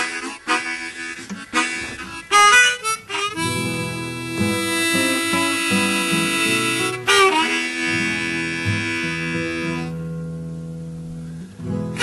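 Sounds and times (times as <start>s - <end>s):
harmonica: 0.0s - 10.6s, 11.2s - 12.0s
acoustic guitar: 0.0s - 12.0s.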